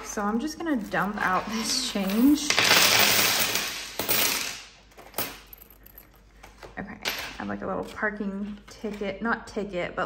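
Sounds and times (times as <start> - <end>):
coins pouring onto wooden desk: 0.6 - 6.1.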